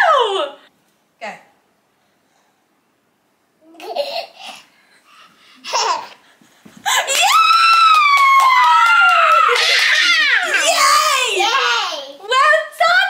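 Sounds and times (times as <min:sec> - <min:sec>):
woman cheering: 0:06.9 - 0:11.5.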